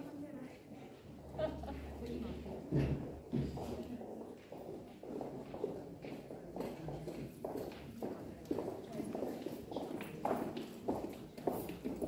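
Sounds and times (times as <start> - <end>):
murmur of voices: 0.0 - 12.0
footsteps on hard paved floor: 1.9 - 12.0.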